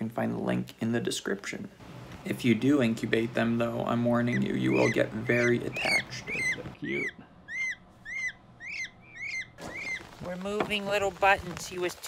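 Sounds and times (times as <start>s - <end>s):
peachicks peeping: 2.2s - 11.7s.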